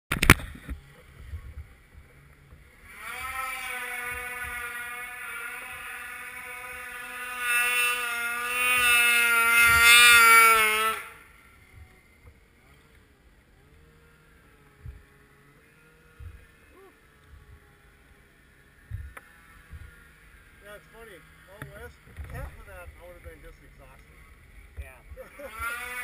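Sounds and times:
snowmobile engine at high revs: 0.1s - 26.0s.

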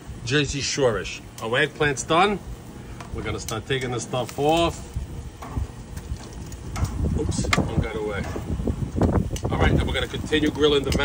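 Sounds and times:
tongs clicking on grill grates: 1.3s - 1.7s, 3.0s - 11.0s.

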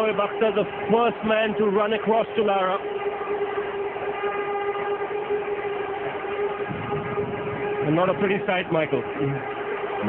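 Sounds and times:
stadium crowd noise: 0.0s - 10.0s
steady droning tone: 0.0s - 10.0s.

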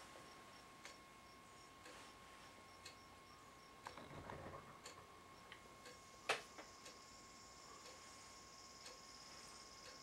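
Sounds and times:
wall clock ticking: 0.0s - 4.0s, 4.8s - 10.0s
faint high-pitched whine: 0.0s - 10.0s.

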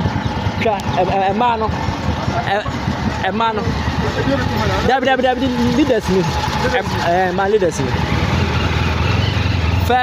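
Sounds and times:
outdoor road noise: 0.0s - 10.0s
vehicle engine rumbling: 0.0s - 10.0s.

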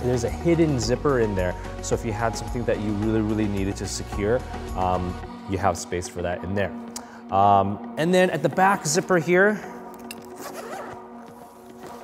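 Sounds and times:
soft background music: 0.0s - 12.0s
zipper being pulled open: 10.0s - 12.0s.

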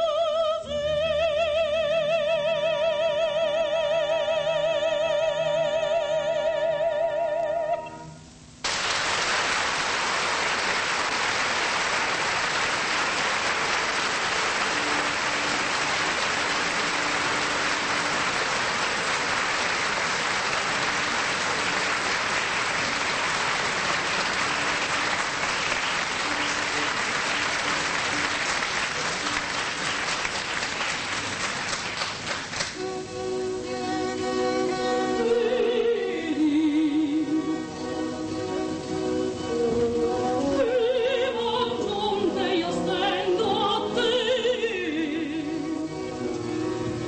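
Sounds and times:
audience applauding: 8.6s - 32.8s.

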